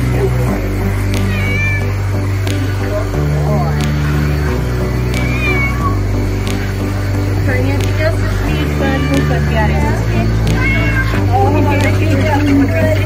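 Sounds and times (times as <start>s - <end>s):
music with bass and beat: 0.0s - 13.0s
cat meowing: 1.2s - 1.9s, 5.1s - 6.0s, 8.4s - 12.6s.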